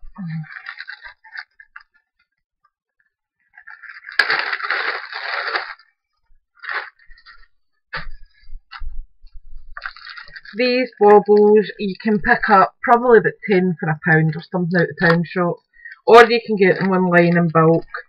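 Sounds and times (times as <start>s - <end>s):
crinkly rustle: 0.1s - 2.4s, 3.0s - 7.6s, 8.2s - 11.8s.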